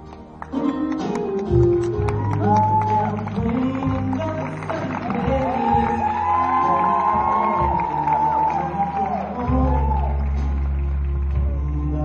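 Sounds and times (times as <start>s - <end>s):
live pop music: 0.0s - 12.0s
crowd cheering: 1.1s - 12.0s.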